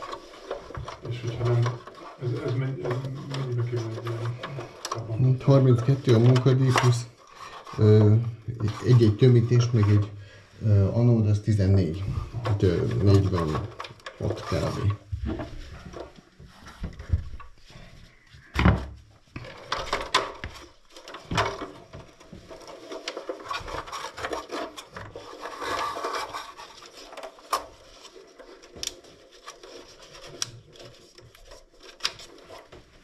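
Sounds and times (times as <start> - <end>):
gloved hands rubbing wiring: 0.0 - 10.1.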